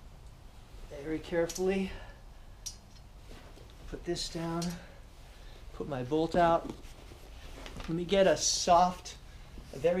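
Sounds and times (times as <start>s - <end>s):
faint handling of metal part: 2.6s - 5.0s.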